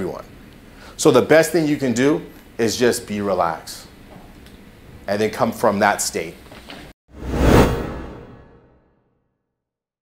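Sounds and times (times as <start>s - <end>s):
whoosh with deep rumble: 7.2s - 8.8s.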